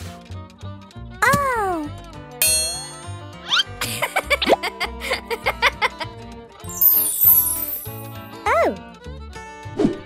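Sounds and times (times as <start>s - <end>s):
bright ringing chime: 2.4s - 3.2s, 6.7s - 8.2s.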